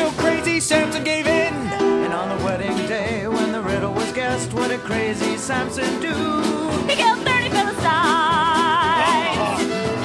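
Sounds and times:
small band accompaniment: 0:00.0 - 0:10.0
voices singing: 0:04.8 - 0:09.8.

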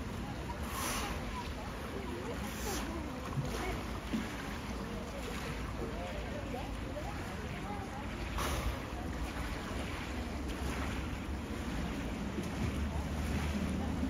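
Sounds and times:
faint voices: 0:00.0 - 0:14.0
moving water: 0:00.0 - 0:14.0.

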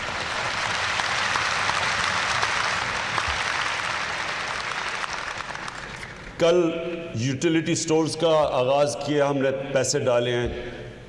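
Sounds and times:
audience applauding: 0:00.0 - 0:06.3.

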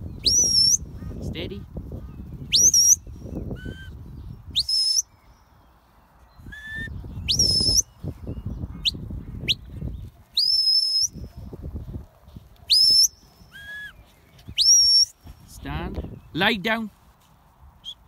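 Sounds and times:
shrill whistle blasts: 0:04.6 - 0:05.0, 0:06.5 - 0:07.9, 0:10.4 - 0:11.2, 0:12.7 - 0:14.0, 0:14.6 - 0:15.1.

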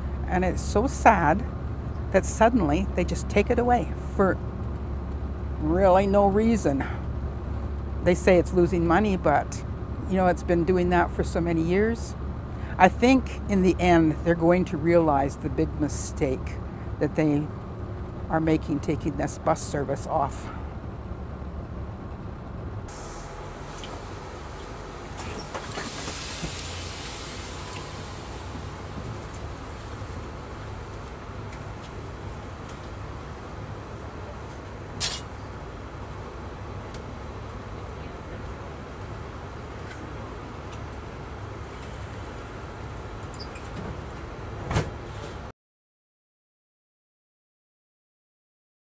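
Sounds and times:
bus engine idling: 0:00.0 - 0:45.4
hiss: 0:22.9 - 0:30.0.

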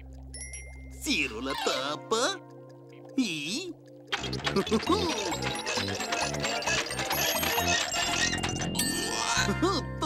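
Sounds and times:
comic machine clatter and blips: 0:04.1 - 0:09.1
lively music: 0:04.1 - 0:10.0.

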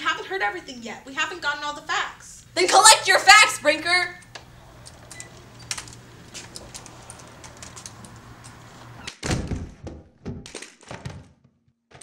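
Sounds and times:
low room hum: 0:00.0 - 0:09.1
loud heavy thumps and knocks: 0:09.2 - 0:11.3.

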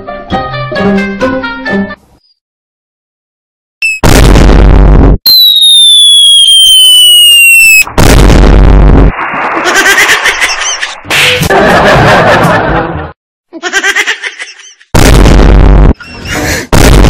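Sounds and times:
long falling whistle: 0:05.3 - 0:07.9.

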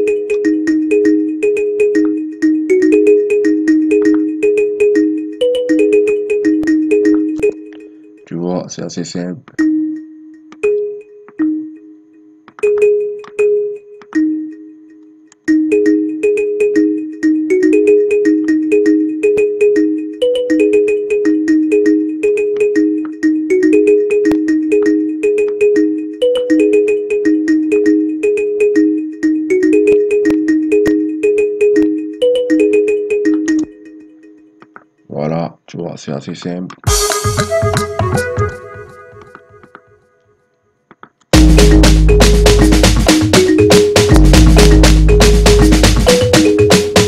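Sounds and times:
plucked kalimba melody: 0:00.0 - 0:07.9, 0:41.4 - 0:47.0
trap drums and percussion: 0:41.4 - 0:47.0.

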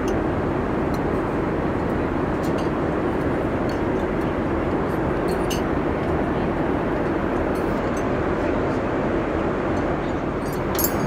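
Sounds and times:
airliner cabin noise: 0:00.0 - 0:11.0.

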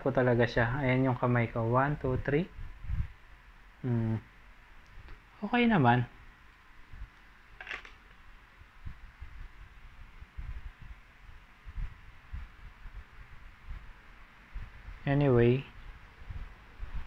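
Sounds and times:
steady background hiss: 0:00.0 - 0:17.0.

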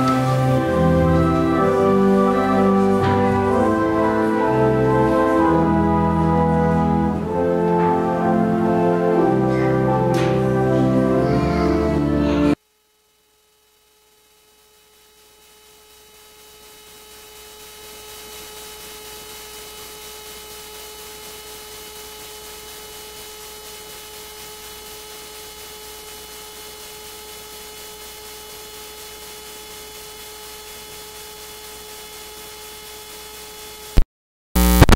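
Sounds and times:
electrical hum with hiss: 0:00.0 - 0:34.0, 0:34.6 - 0:34.9.

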